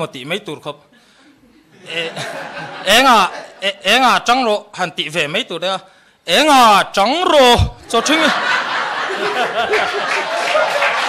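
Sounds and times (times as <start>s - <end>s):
audience laughing: 1.4s - 3.7s, 7.8s - 11.0s.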